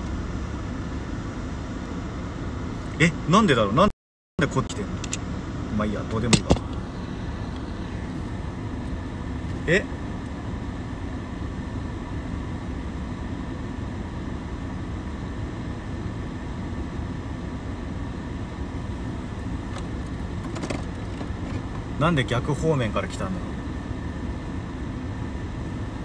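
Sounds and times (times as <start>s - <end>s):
car idling rumble: 0.0s - 26.0s.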